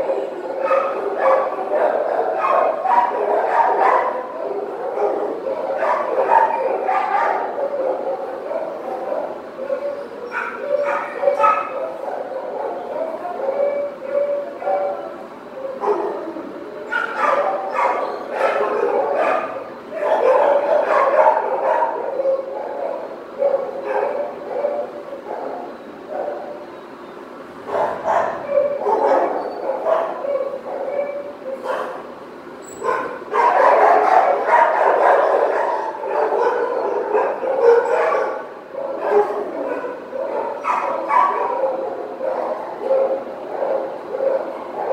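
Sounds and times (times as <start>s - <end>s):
dogs whimpering: 0.0s - 26.7s, 27.7s - 32.0s, 32.6s - 44.9s
dogs barking and yipping: 0.0s - 44.9s.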